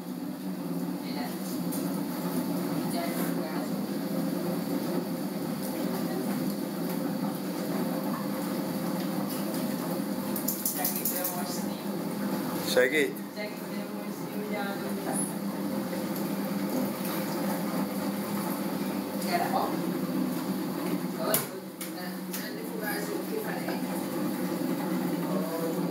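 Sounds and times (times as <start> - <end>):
spin dryer whirring hum: 0.0 - 25.9.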